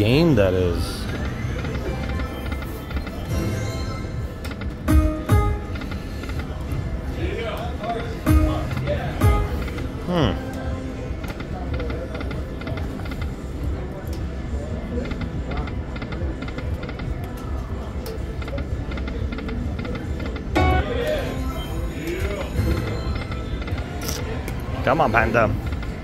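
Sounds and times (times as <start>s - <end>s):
slot machine game music: 0.0s - 6.3s, 8.1s - 10.4s, 20.5s - 24.0s
casino chatter: 0.0s - 26.0s.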